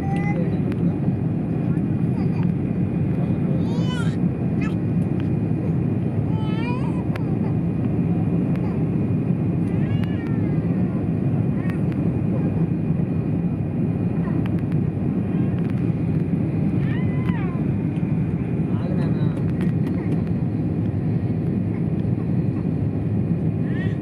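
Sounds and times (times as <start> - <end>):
jet engine rumble in cabin: 0.0 - 24.0.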